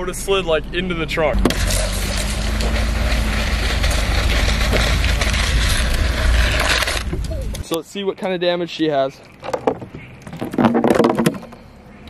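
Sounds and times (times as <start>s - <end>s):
board scraping on concrete: 1.4s - 7.6s, 9.6s - 11.6s.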